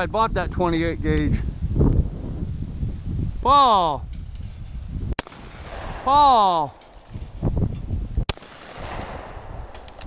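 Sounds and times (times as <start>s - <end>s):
shotgun shot: 5.2s - 7.2s, 8.3s - 10.0s.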